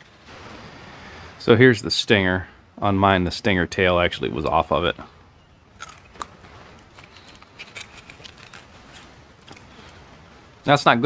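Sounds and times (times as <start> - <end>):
person chewing crunchy food: 5.8 - 9.7.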